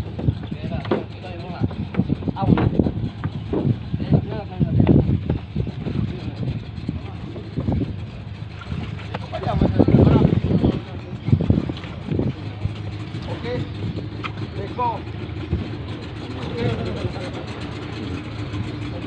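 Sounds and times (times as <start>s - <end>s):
low engine hum: 0.0s - 19.0s
men talking: 0.3s - 19.0s.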